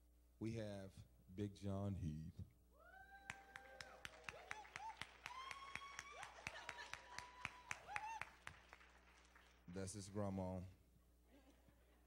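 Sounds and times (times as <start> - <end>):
people whooping: 2.8 - 8.6.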